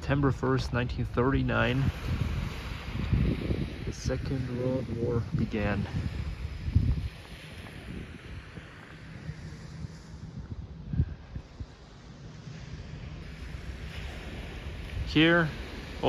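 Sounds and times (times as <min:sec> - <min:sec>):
small waves on beach: 0:00.0 - 0:16.0
wind buffeting microphone: 0:00.0 - 0:16.0.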